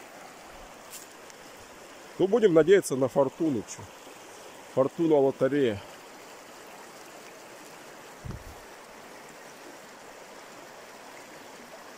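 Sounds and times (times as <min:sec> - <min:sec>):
river water rushing over riffle: 0:00.0 - 0:11.9
low thump: 0:08.2 - 0:08.6.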